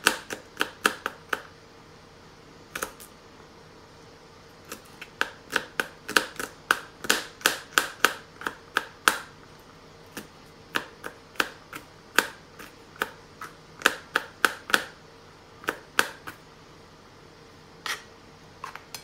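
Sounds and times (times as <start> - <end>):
knife chopping on plastic board: 0.0 - 1.5, 4.7 - 9.4, 10.1 - 15.0, 15.6 - 16.4.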